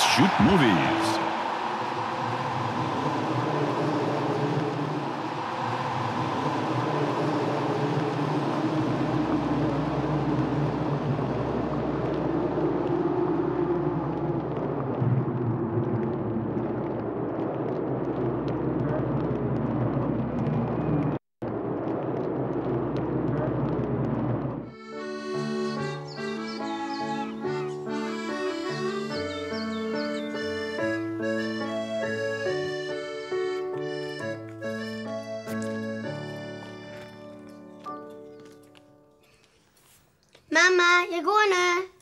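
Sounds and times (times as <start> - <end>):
steady rumbling background noise: 1.2 - 24.7.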